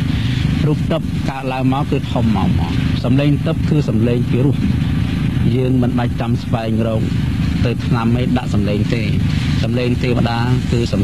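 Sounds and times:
low background rumble: 0.0 - 11.0
man speaking: 0.0 - 11.0.

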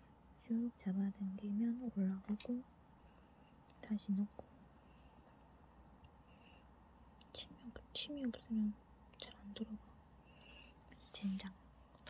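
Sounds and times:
woman whispering softly: 0.4 - 2.6, 3.8 - 4.6, 7.2 - 9.9, 10.8 - 11.6.

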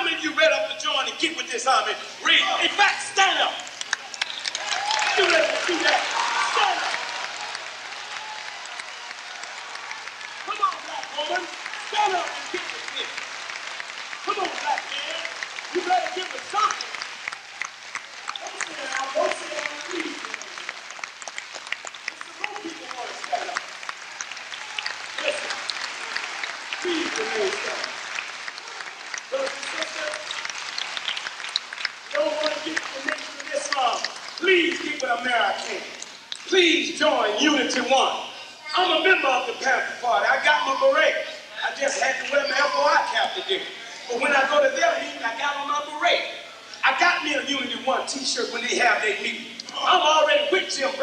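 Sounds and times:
voices calling out in crowd: 0.0 - 20.8, 22.0 - 31.1, 32.1 - 51.0
audience applauding: 1.9 - 38.2, 38.8 - 51.0.

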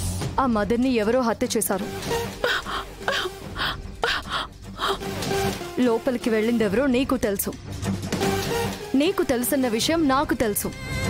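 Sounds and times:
woman gasping for breath: 2.4 - 5.2.

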